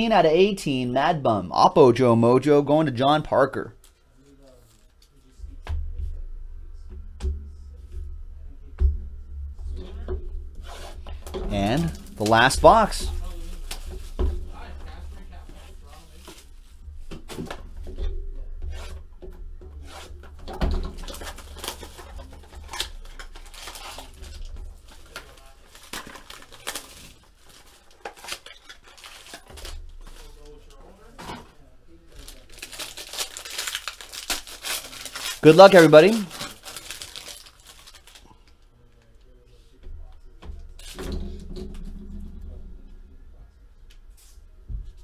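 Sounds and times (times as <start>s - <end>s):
low steady hum: 3.6s - 45.0s
foil pack handled: 10.6s - 16.6s, 20.8s - 31.2s, 32.1s - 38.4s
plastic wrap tearing and crinkling: 10.6s - 16.8s, 20.8s - 31.2s, 32.0s - 38.6s.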